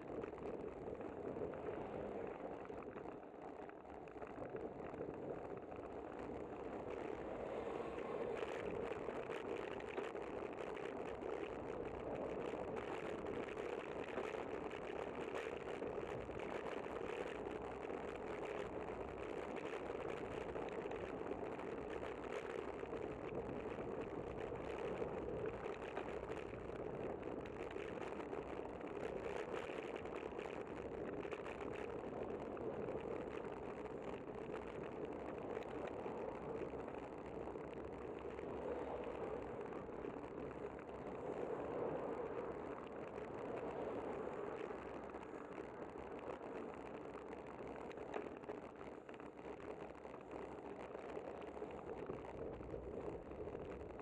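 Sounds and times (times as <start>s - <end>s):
road noise from moving bicycle: 0.0s - 54.0s.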